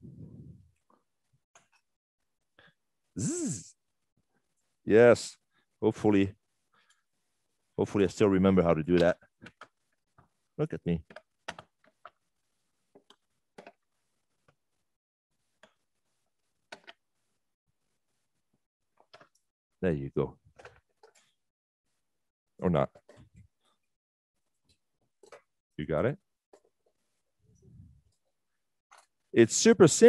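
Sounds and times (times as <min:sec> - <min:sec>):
person asking a question: 0:03.2 - 0:03.7.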